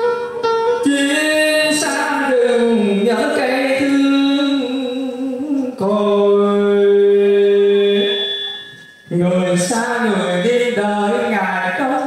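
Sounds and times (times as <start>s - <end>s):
man singing ornamented line: 0.8s - 12.0s
long held sung note: 6.4s - 11.4s.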